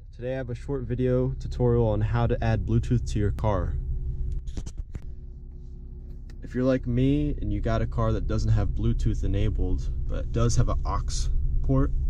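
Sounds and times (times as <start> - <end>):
car cabin rumble and hum: 0.0 - 12.0.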